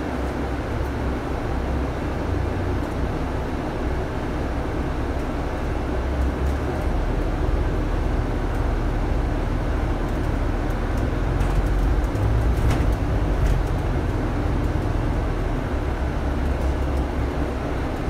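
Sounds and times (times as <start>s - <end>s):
bus engine drone: 0.0s - 18.0s
road rumble: 0.0s - 18.0s.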